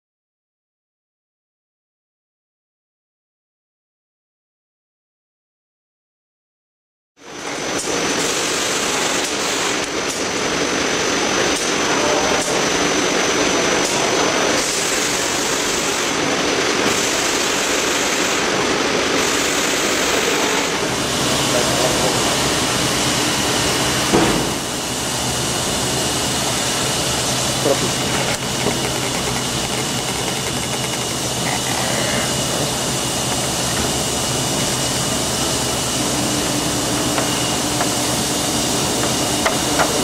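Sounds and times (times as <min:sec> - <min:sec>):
bag machine running: 0:07.2 - 0:40.0.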